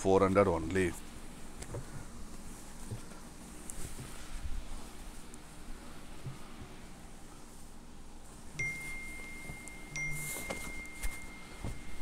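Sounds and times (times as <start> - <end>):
high chime-like ringing tone: 8.6 - 12.0.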